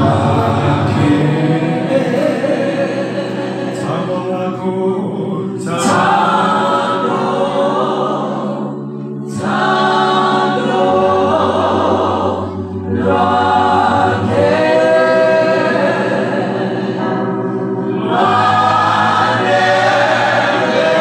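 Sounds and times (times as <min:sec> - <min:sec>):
man singing into a microphone: 0:00.0 - 0:07.4
group of voices singing: 0:00.0 - 0:21.0.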